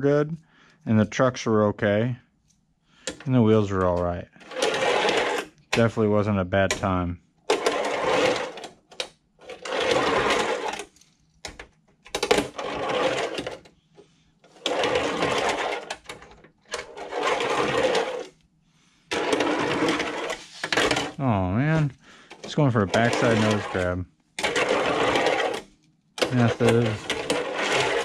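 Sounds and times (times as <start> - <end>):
small wheels rolling on a ramp: 4.4 - 6.0, 6.8 - 8.6, 9.4 - 11.1, 12.1 - 13.7, 14.5 - 18.4, 19.1 - 21.2, 22.4 - 28.0.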